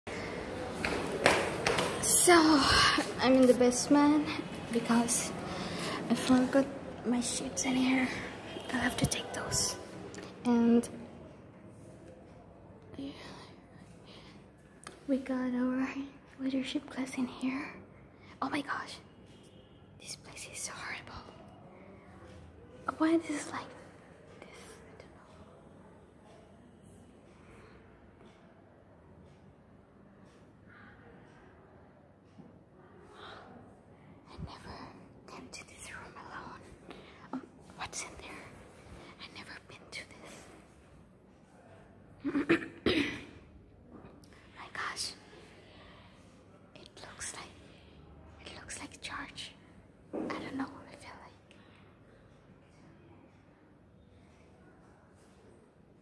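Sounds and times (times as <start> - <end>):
person whispering or breathing: 0.1 - 0.8, 2.2 - 10.5, 11.7 - 19.2, 20.0 - 25.6, 30.2 - 41.8, 44.2 - 52.3
faint room hiss: 0.1 - 56.0.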